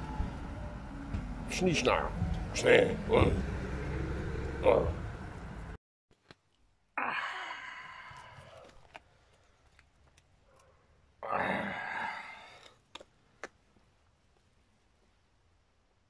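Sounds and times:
man exhaling breathily: 0:07.0 - 0:08.7, 0:11.3 - 0:12.7.

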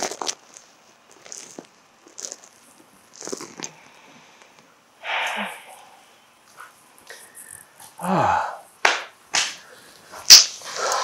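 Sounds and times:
breathy sounds: 0:03.4 - 0:06.4, 0:07.1 - 0:08.7
loud sharp smack: 0:08.8 - 0:09.6.

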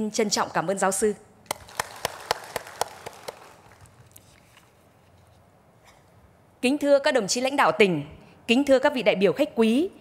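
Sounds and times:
audience applause: 0:01.5 - 0:04.0
sharp close claps: 0:01.5 - 0:04.0.

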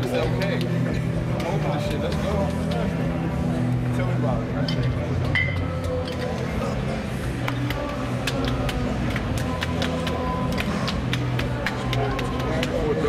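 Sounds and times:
indistinct chatter: 0:00.0 - 0:13.0.

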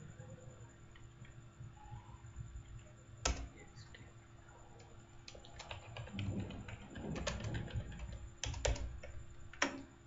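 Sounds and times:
keyboard typing: 0:03.2 - 0:04.0, 0:04.8 - 0:09.9.

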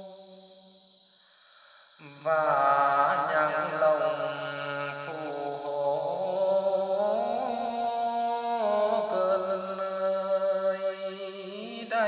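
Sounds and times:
person singing chant-like song: 0:00.0 - 0:00.4, 0:01.8 - 0:12.0.

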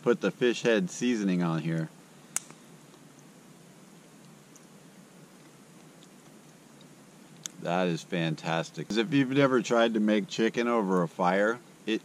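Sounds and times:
sharp click: 0:02.4 - 0:02.6.

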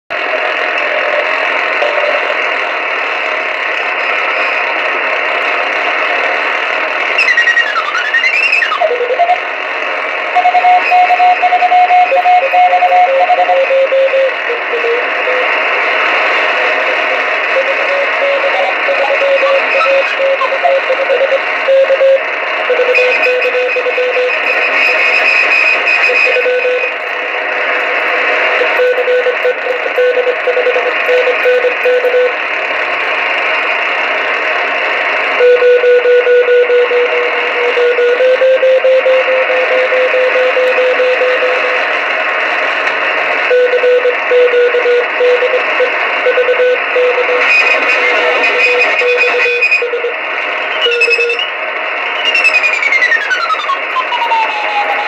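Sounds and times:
radio band noise hiss: 0:00.1 - 0:55.0
morse code tones: 0:00.9 - 0:02.5, 0:07.2 - 0:09.5, 0:10.3 - 0:27.2, 0:27.8 - 0:32.4, 0:35.4 - 0:41.9, 0:43.4 - 0:51.6, 0:52.2 - 0:55.0
gliding radio whistle: 0:07.1 - 0:09.5, 0:10.2 - 0:27.1, 0:35.4 - 0:42.0, 0:43.4 - 0:55.0.

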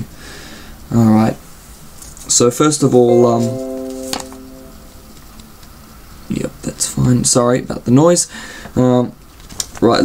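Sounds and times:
held tone: 0:03.0 - 0:05.3.

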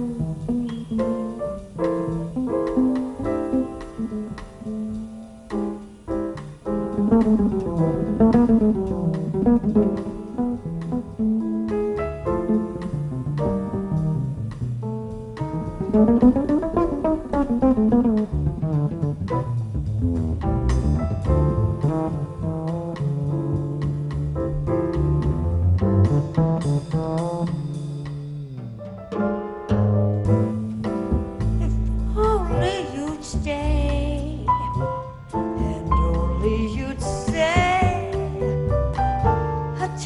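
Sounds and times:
piano: 0:00.0 - 0:40.0
plucked double bass: 0:00.0 - 0:40.0.

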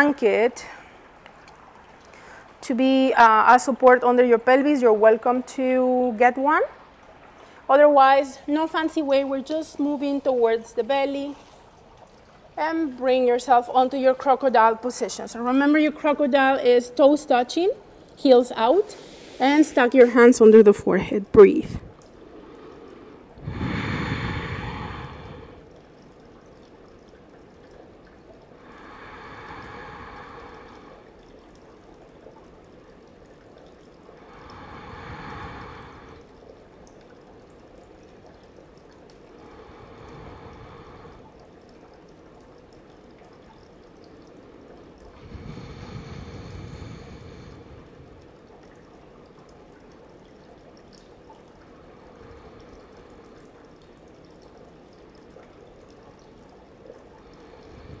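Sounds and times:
faint background hiss: 0:00.0 - 0:58.0
person breathing slowly: 0:22.2 - 0:25.7, 0:28.6 - 0:31.2, 0:34.2 - 0:36.4, 0:39.4 - 0:41.4, 0:45.1 - 0:48.2, 0:51.8 - 0:53.6, 0:57.2 - 0:58.0.

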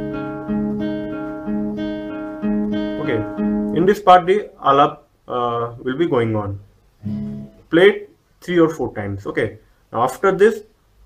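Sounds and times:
fingerpicked acoustic guitar arpeggio: 0:00.0 - 0:04.0, 0:07.0 - 0:07.7.

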